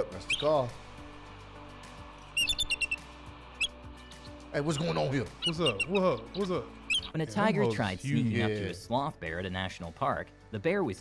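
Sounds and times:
eagle high piping call: 0.2 - 0.6, 2.3 - 7.2.

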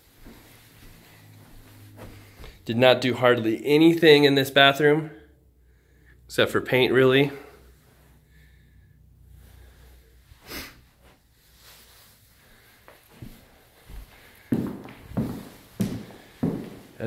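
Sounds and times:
footsteps on hardwood floor: 0.1 - 2.6, 12.9 - 17.0
person sniffing: 9.6 - 12.9.

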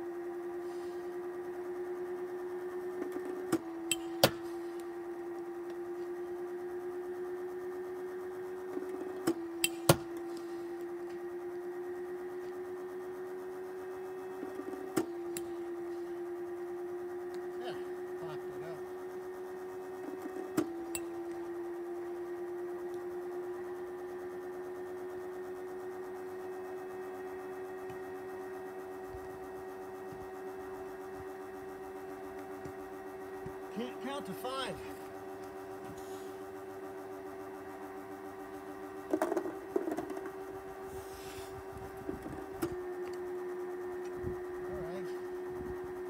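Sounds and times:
pitching machine motor whining: 0.0 - 46.0.

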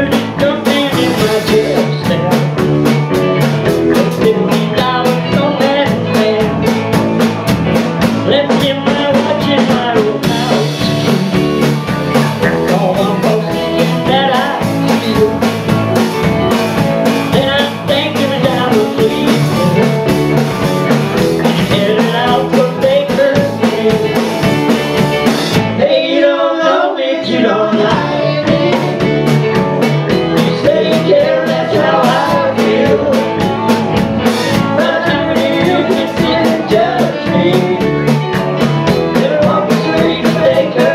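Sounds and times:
person singing: 0.0 - 3.0, 3.7 - 7.2, 8.1 - 16.2, 17.1 - 40.9
bass guitar: 0.0 - 40.9
drums: 0.0 - 40.9
electric guitars: 0.0 - 40.9.

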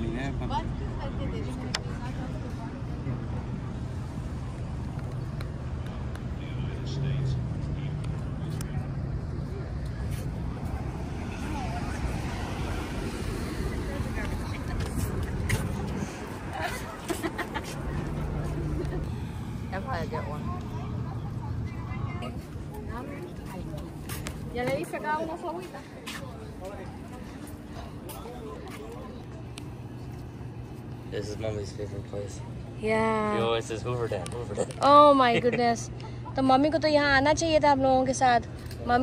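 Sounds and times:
low outdoor rumble: 0.0 - 39.0.

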